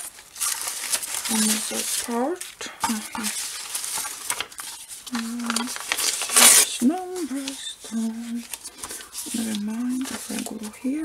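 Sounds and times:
paper scraps rustling: 0.0 - 11.0
person humming: 5.1 - 5.7, 6.7 - 8.4.

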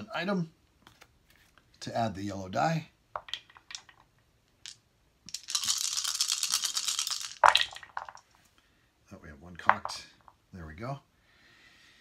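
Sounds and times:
dice clicking: 3.1 - 8.2
dice clattering in wooden tray: 3.1 - 8.3
dice being shaken: 3.1 - 8.4.

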